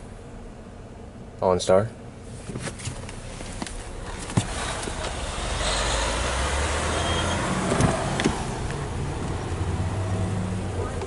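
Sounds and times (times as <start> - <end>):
vehicle noise: 2.1 - 11.0.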